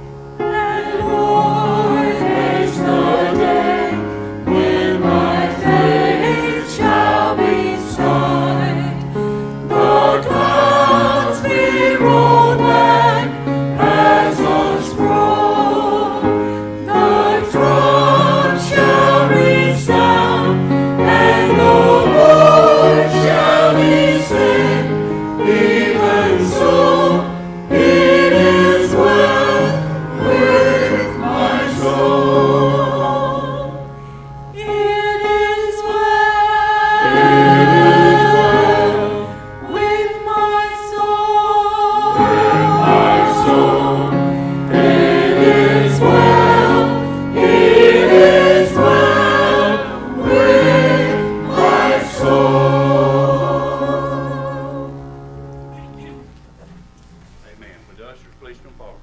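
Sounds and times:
choir singing a hymn: 0:00.0 - 0:56.3.

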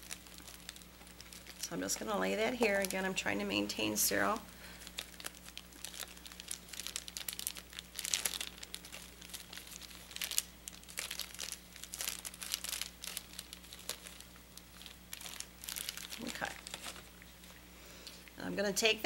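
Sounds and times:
plastic sleeve crinkling: 0:00.0 - 0:18.3.

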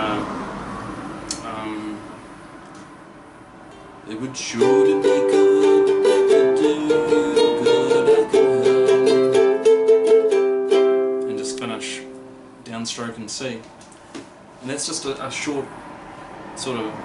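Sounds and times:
ukulele strumming chords: 0:04.4 - 0:12.6.

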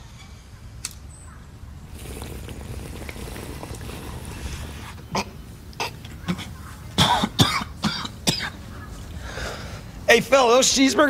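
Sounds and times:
low outdoor rumble: 0:00.0 - 0:11.0
man coughing: 0:05.1 - 0:08.6.

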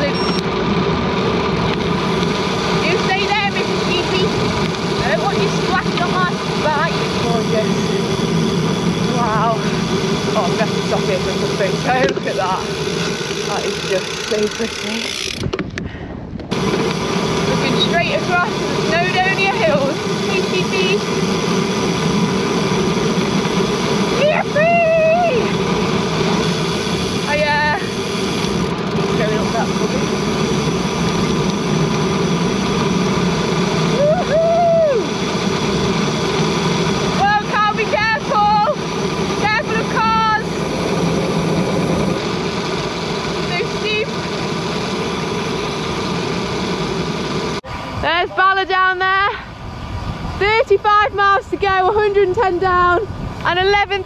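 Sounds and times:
wind and tyre noise: 0:00.0 - 0:54.0
voices calling and speaking: 0:02.7 - 0:15.2, 0:17.5 - 0:21.1, 0:24.1 - 0:25.7, 0:27.2 - 0:28.1, 0:29.0 - 0:30.2, 0:37.2 - 0:40.6, 0:43.4 - 0:44.2, 0:48.0 - 0:49.6, 0:50.4 - 0:54.0.

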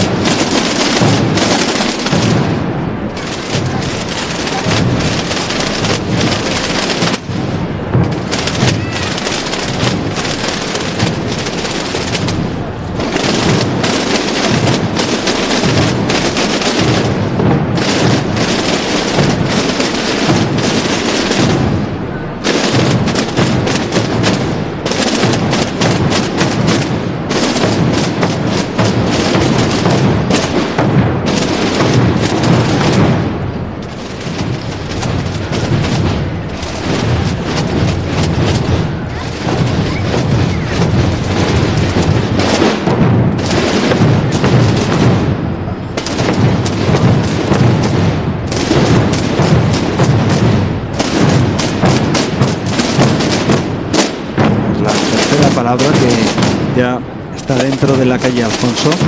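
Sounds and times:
bass drum booms: 0:00.0 - 0:59.0
snare drums rattling: 0:00.0 - 0:59.0.

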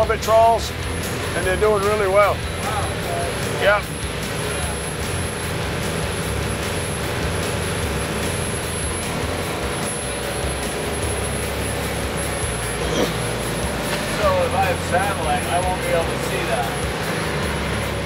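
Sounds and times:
boat diesel engine droning: 0:00.0 - 0:18.0.

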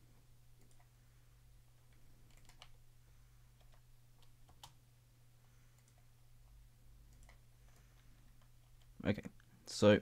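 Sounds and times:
low steady hum: 0:00.0 - 0:10.0
mouse and keyboard clicks: 0:01.9 - 0:02.8.

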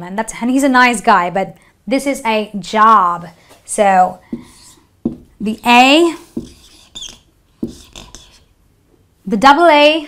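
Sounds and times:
marker squeaking on whiteboard: 0:04.3 - 0:08.5.

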